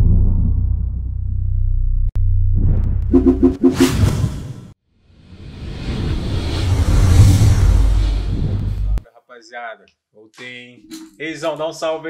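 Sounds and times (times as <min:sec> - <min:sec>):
rush of noise: 0:05.1 - 0:09.0.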